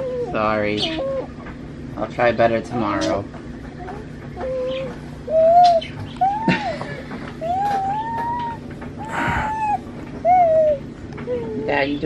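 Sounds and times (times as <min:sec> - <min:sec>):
baby vocalizing high calls: 0:07.4 - 0:10.8.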